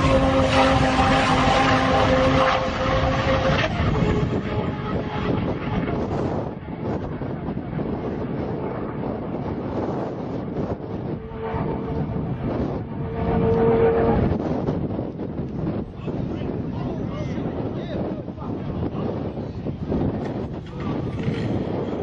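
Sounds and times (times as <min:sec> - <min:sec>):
car engine at high revs: 0:00.0 - 0:14.5
wind buffeting microphone: 0:00.0 - 0:22.0.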